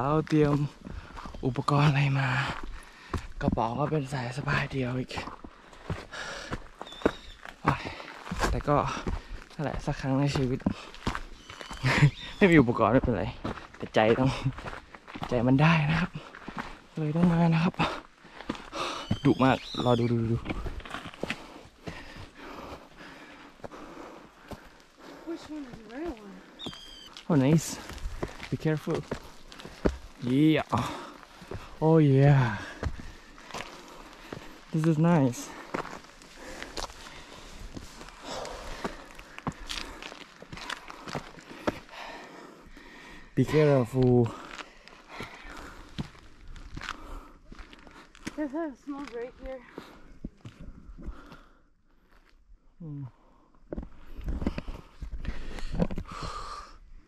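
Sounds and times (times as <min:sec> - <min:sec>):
footsteps on dirt trail: 0:00.0 - 0:52.4, 0:53.3 - 0:56.6.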